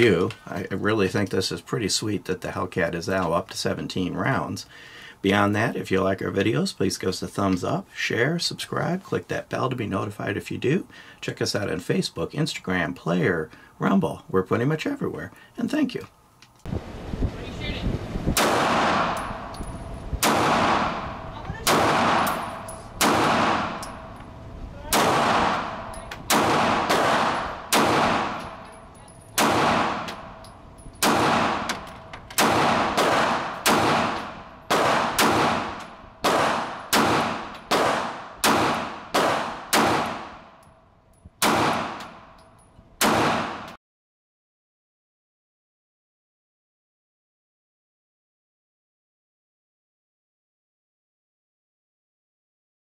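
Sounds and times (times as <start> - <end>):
pistol shots echoing indoors: 20.2 - 23.9, 24.9 - 28.6, 29.4 - 30.2, 31.0 - 40.4, 43.0 - 43.8.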